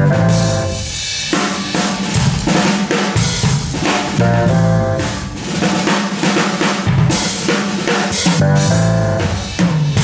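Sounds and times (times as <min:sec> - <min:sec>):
held keyboard chord: 0:00.0 - 0:01.1, 0:01.7 - 0:05.8, 0:08.1 - 0:09.6
live band playing: 0:00.0 - 0:10.0.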